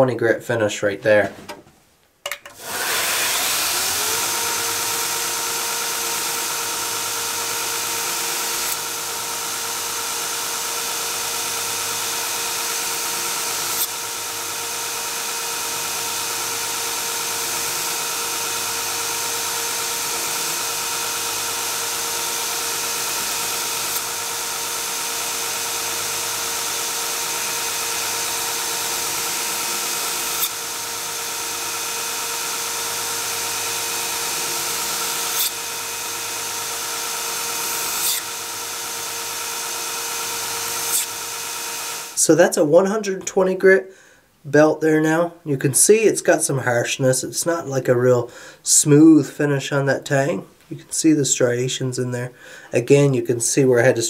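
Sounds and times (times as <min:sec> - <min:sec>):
belt grinder whining: 0:02.4 - 0:42.4
steel being ground on belt: 0:02.8 - 0:10.0, 0:11.1 - 0:42.1.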